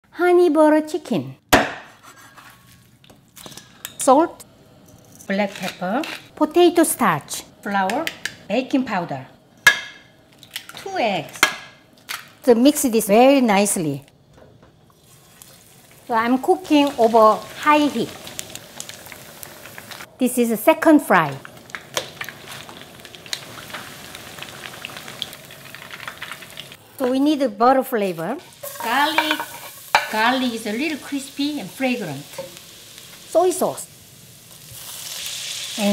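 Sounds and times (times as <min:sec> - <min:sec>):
knife scraping raw chicken: 0:01.9 - 0:02.8
oil sizzling and popping: 0:02.7 - 0:35.9.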